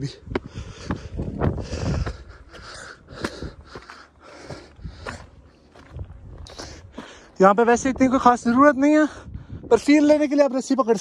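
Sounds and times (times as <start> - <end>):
footsteps on rock and loose stone: 0.0 - 8.3
person breathing hard: 0.2 - 5.5, 6.4 - 7.4.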